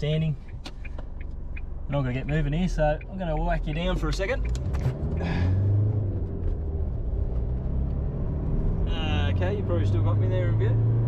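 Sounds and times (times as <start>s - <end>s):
diesel engine running: 0.0s - 8.2s
person sighing: 5.2s - 5.8s.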